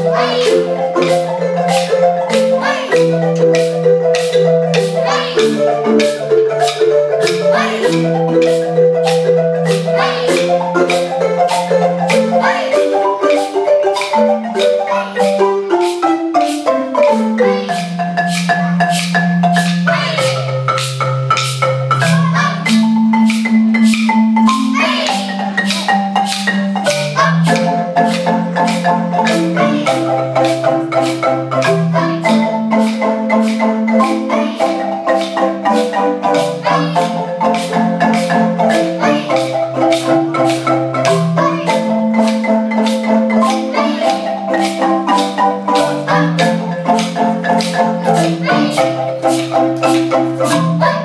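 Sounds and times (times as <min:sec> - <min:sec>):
marimba ensemble playing: 0:00.0 - 0:51.0.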